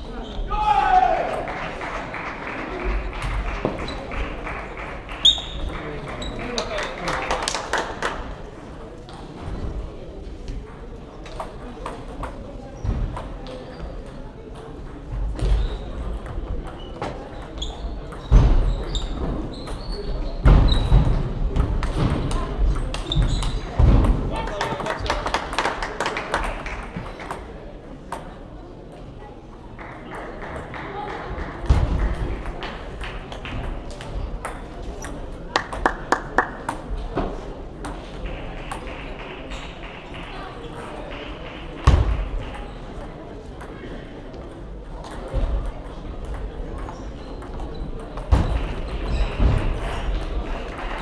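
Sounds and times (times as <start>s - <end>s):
chatter in a sports hall: 0.0s - 51.0s.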